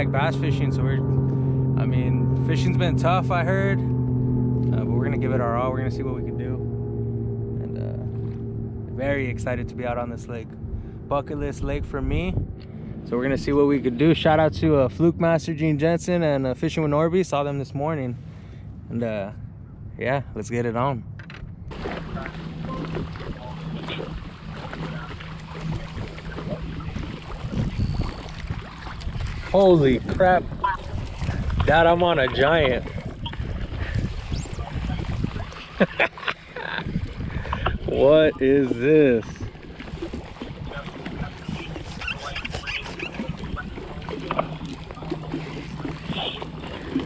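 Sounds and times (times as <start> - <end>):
steady low hum: 0.0 - 40.1
small waves lapping against hull: 7.6 - 17.4, 21.7 - 47.0
wind on microphone: 8.9 - 15.2, 21.6 - 35.8, 36.6 - 47.0.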